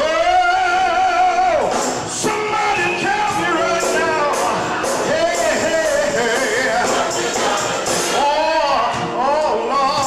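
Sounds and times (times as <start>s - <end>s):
gospel singing: 0.0s - 10.0s
instrumental accompaniment: 1.2s - 10.0s.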